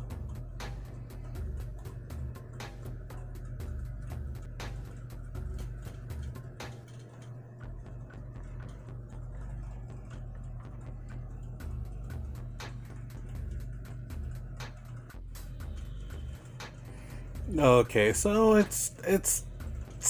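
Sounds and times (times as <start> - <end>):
quiet background music with bass: 0.0 - 20.0.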